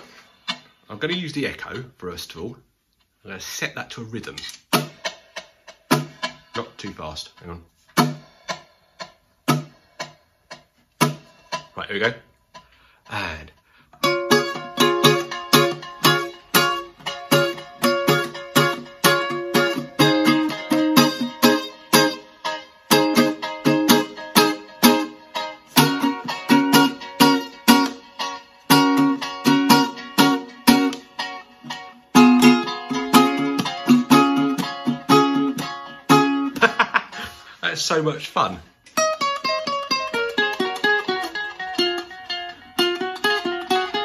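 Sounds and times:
ukulele strummed with echo: 4.6s - 37.6s, 38.9s - 44.0s.

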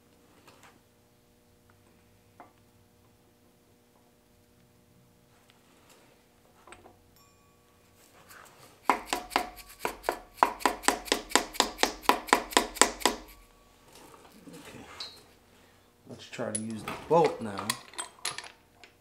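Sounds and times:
rubber mallet tapping metal pulley: 8.9s - 13.4s.

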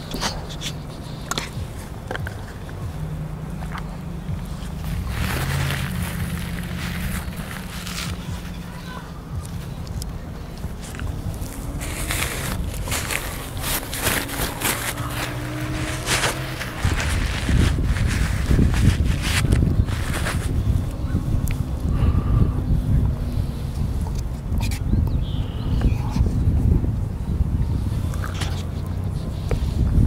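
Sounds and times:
steady low rumble: 0.0s - 30.0s
paper napkin crinkling: 4.5s - 9.0s, 10.8s - 20.7s.

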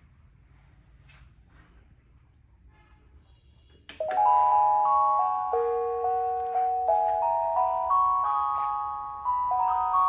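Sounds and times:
bell-like clock melody: 4.0s - 10.0s.

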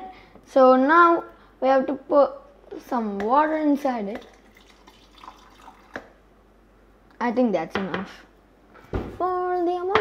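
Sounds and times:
water trickling into jar: 4.2s - 6.1s.

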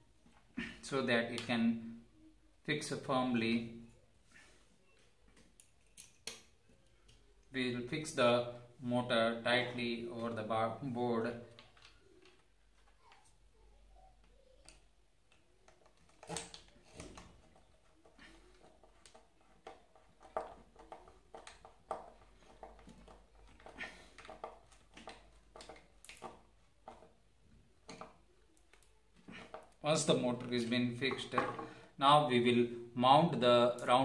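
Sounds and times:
screwdriver clicks and metal knocks: 5.4s - 6.6s.

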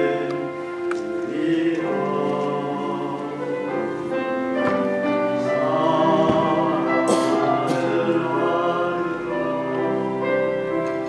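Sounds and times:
man singing slow song: 0.0s - 3.6s, 5.4s - 9.4s.

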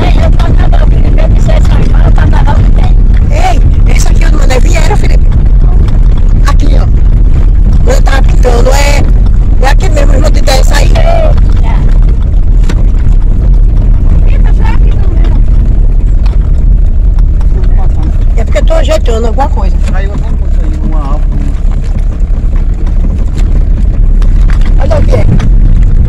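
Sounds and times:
car road and engine noise: 0.0s - 26.0s.

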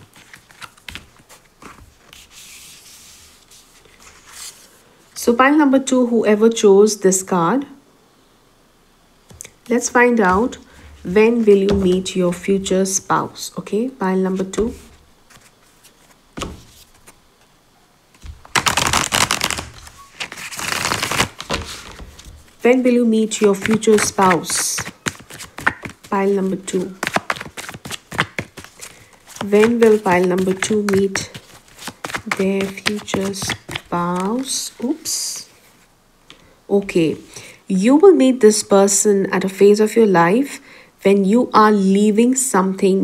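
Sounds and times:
cards riffle-shuffled: 0.0s - 4.7s, 14.3s - 17.2s, 18.2s - 22.5s, 23.2s - 34.9s
cards sliding across wooden table: 0.2s - 4.7s, 14.4s - 17.2s
cards tapping and clicking: 16.4s - 17.0s, 23.3s - 26.1s, 26.7s - 34.5s.

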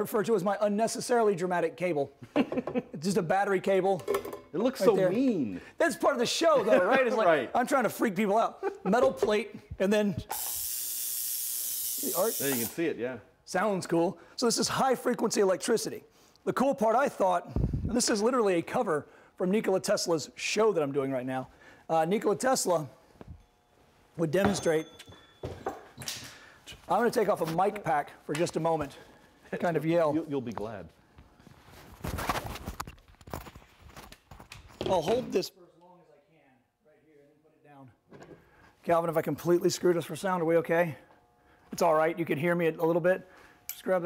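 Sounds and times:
electrical discharge hiss: 10.2s - 12.8s
fabric rustling on microphone: 31.4s - 34.1s.

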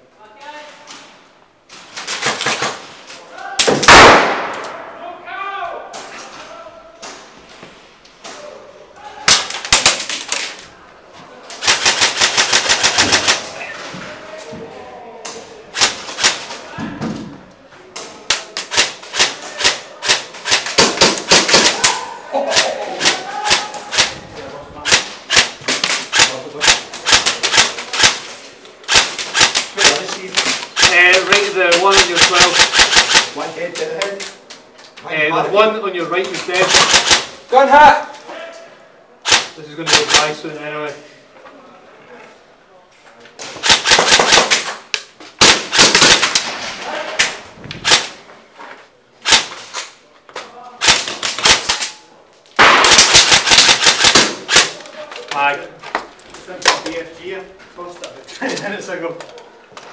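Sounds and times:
people shouting: 3.2s - 4.0s, 8.4s - 9.8s, 21.5s - 24.3s
airsoft guns firing full-auto: 3.8s - 4.6s, 11.6s - 13.5s, 18.7s - 21.9s, 24.8s - 28.3s, 28.9s - 33.4s, 36.6s - 37.3s, 43.6s - 44.7s, 45.4s - 46.5s, 50.8s - 51.9s, 52.6s - 54.8s.

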